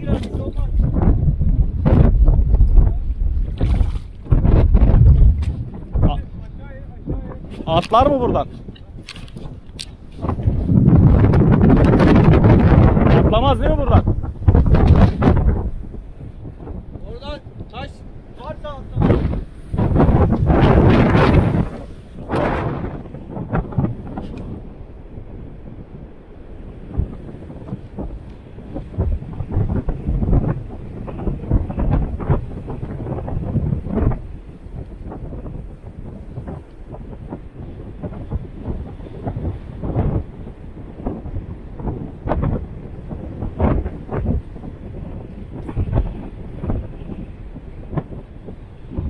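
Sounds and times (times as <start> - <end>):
surf breaking on rocks: 0.0 - 6.2, 18.6 - 49.0
strong wind buffeting microphone: 0.0 - 49.0.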